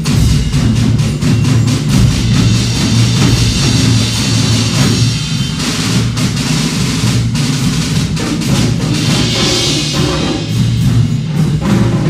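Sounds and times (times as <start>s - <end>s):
drum band performing: 0.0s - 12.0s.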